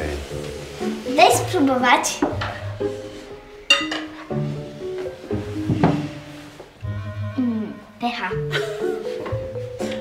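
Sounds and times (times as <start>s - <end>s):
light background music: 0.0s - 10.0s
cutlery clinking on plates: 3.7s - 4.4s.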